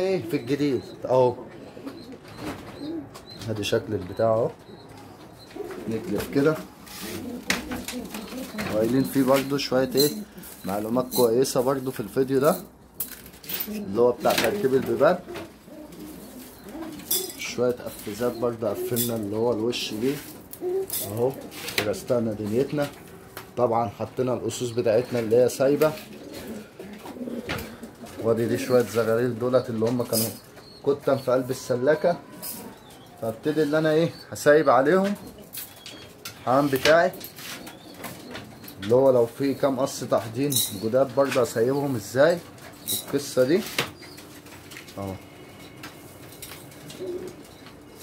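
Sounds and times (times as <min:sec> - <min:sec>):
pigeons cooing: 0:00.0 - 0:12.8, 0:13.4 - 0:48.0.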